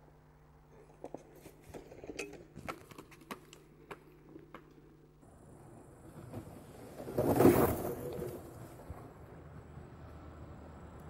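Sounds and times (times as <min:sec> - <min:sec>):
faint clicks and knocks of sled: 0:00.7 - 0:04.9.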